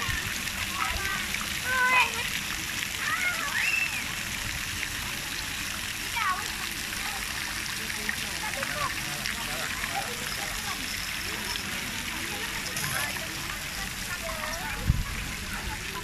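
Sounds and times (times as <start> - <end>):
children's voices and calls: 0.0 - 4.7, 5.3 - 11.0, 11.8 - 16.0
water jets spraying: 0.0 - 16.0.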